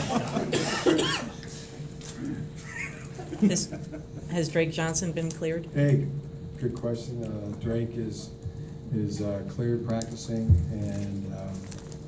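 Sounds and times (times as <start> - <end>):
person coughing: 0.0 - 1.4.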